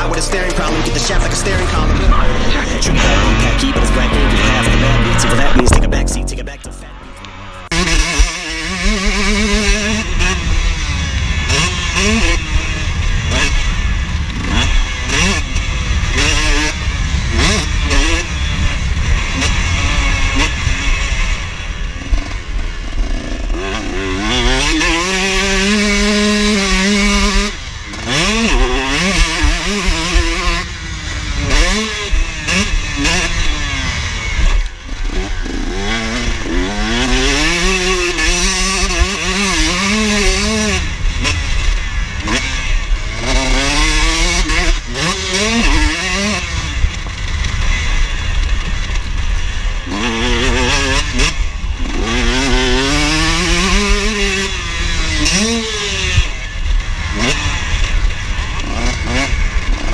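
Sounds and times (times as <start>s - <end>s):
motocross bike engine revving: 0.0s - 59.9s.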